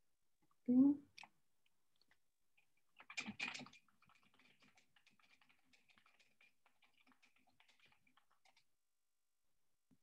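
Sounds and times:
typing on a keyboard: 3.0 - 8.7.

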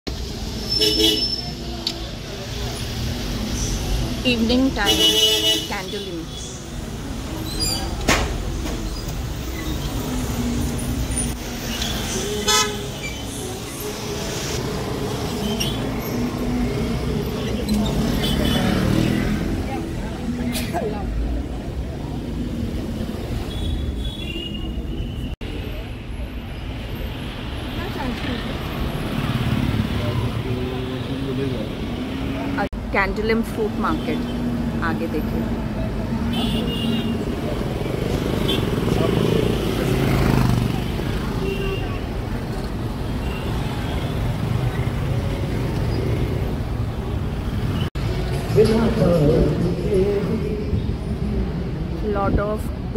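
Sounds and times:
scooters and cars passing: 0.1 - 52.9.

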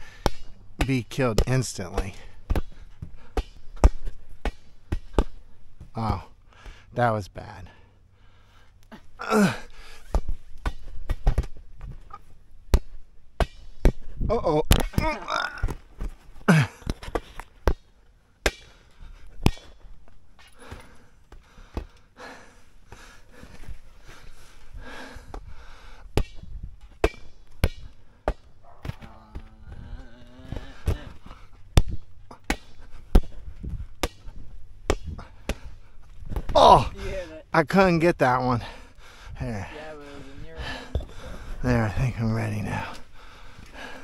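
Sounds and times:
hands slapping inflatable ball: 26.1 - 29.5, 30.5 - 35.7.

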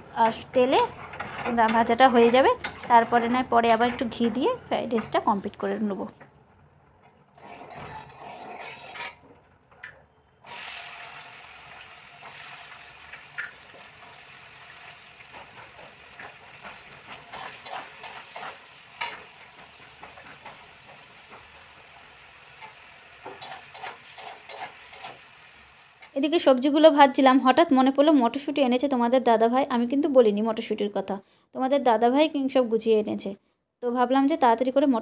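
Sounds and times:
metal spatula scraping pan: 0.2 - 5.2, 7.4 - 9.2, 15.3 - 21.6, 22.5 - 25.3
vegetables sizzling in oil: 10.4 - 26.5.

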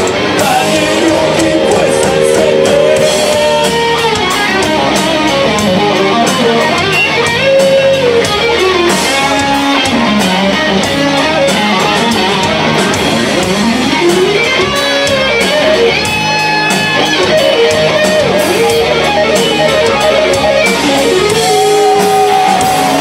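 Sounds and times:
drums and cymbals: 0.0 - 23.0
electric guitars: 0.0 - 23.0
gliding guitar lead line: 0.0 - 23.0.

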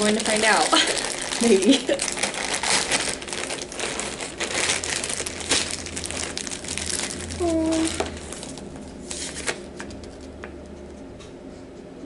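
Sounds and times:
plastic bag crinkling: 0.0 - 10.3.

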